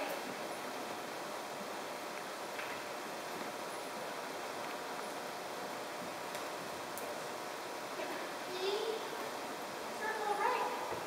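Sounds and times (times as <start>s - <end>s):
indoor riding hall background noise: 0.0s - 11.0s.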